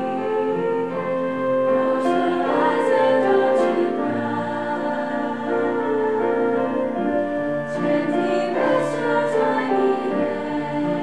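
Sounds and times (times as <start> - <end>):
choir singing: 0.0 - 11.0.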